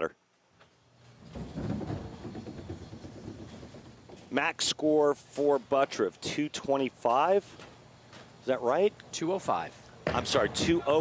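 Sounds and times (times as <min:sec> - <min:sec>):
bowling pins clattering: 0:01.0 - 0:04.8.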